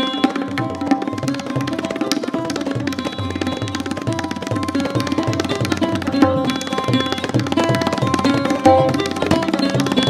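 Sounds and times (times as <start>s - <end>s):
held melodic string notes: 0.0s - 10.0s.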